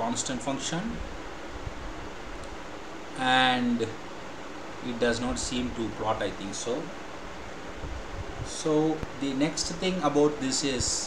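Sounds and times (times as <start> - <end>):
faint low rumble: 0.0 - 11.0
room noise hiss: 0.0 - 11.0.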